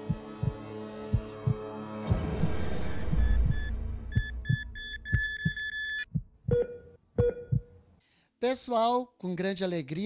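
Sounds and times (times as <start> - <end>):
heartbeat thumps: 0.0 - 1.7, 3.0 - 7.8
high electronic beeps: 2.1 - 7.6
short lower beeps: 2.5 - 7.6.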